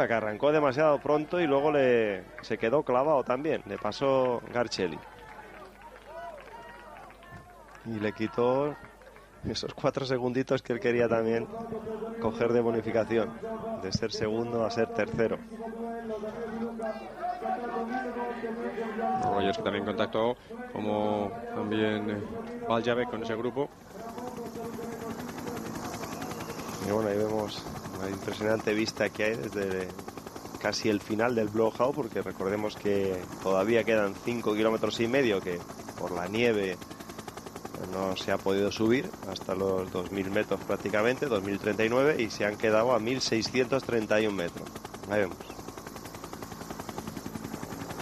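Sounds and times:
helicopter rotor beating: 0.0 - 2.0, 20.8 - 48.0
faint engine hum: 11.0 - 48.0.

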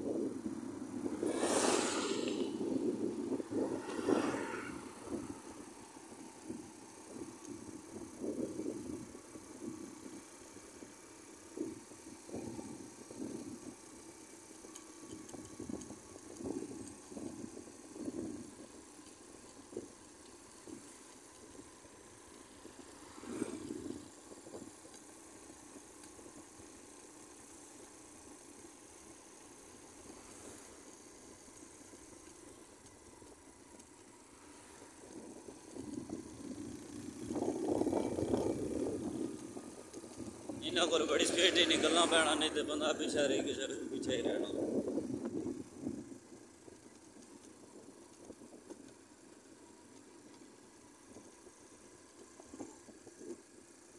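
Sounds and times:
wind noise: 0.0 - 10.2, 34.8 - 46.3
motorcycle engine: 0.1 - 18.4, 19.8 - 53.9.

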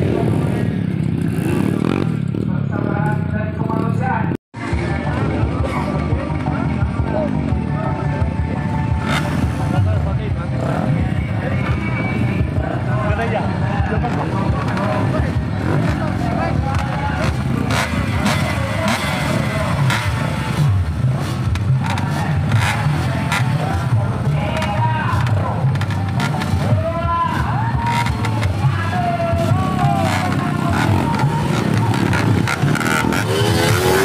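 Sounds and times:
dirt bike engines idling and revving: 0.0 - 34.0
people talking: 1.6 - 34.0
music: 4.6 - 34.0.

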